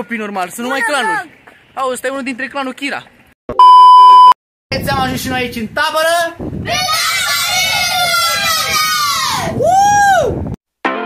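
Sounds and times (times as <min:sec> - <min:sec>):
loud censor bleep tone: 0:03.5 - 0:04.4.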